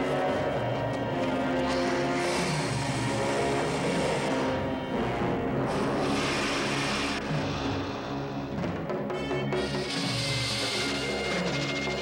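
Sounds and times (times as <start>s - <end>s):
orchestral score: 0.0s - 12.0s.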